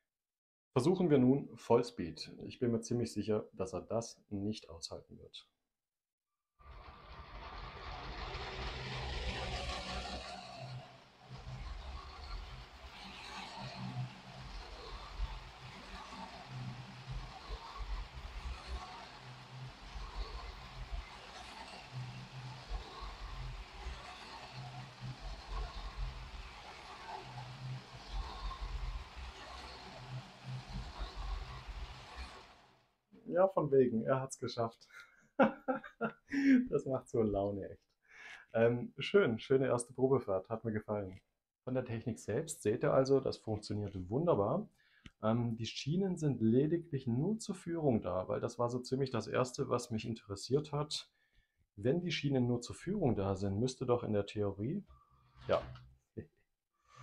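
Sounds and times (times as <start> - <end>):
toy train whirring rattle: 6.7 - 32.8.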